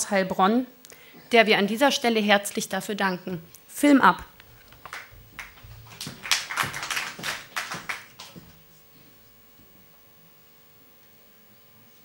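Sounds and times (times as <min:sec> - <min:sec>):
sharp irregular taps: 0:04.4 - 0:08.6.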